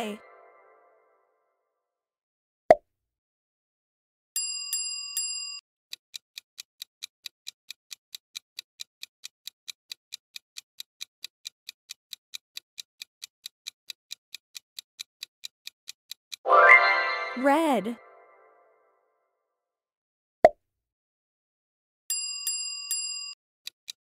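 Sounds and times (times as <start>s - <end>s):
clock ticking: 6.1s - 16.4s
bell-like chimes: 16.5s - 17.4s.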